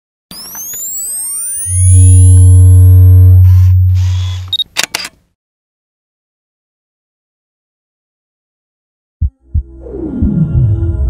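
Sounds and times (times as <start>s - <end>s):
camera shutter clicks: 3.5s - 5.2s.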